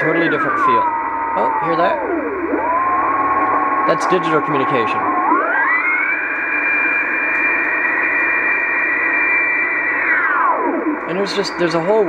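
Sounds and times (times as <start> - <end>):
radio receiver hiss: 0.0 - 12.0
two-tone data signal gliding in pitch: 0.0 - 12.0.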